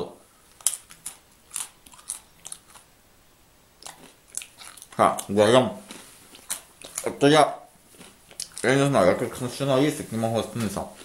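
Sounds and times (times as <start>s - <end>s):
crispbread crunching: 0.5s - 2.9s, 3.8s - 11.0s.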